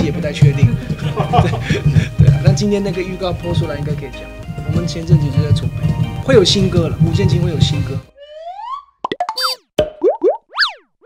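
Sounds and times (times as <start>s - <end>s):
cartoon clicks and pops: 8.6s - 10.8s.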